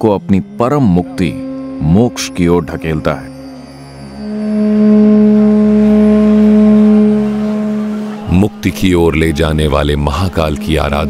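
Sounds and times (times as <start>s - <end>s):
loud low drone: 0.0s - 8.6s.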